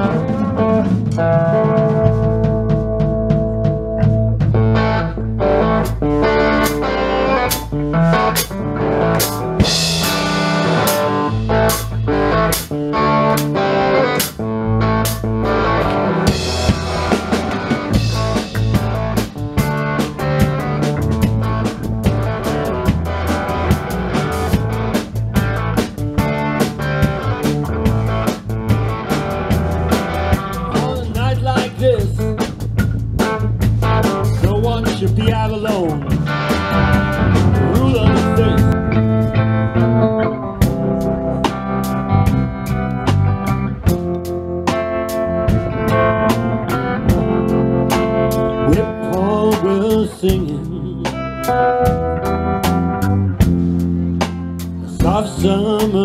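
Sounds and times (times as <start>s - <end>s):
drum kit beat: 0.0s - 56.0s
electric guitars: 0.0s - 56.0s.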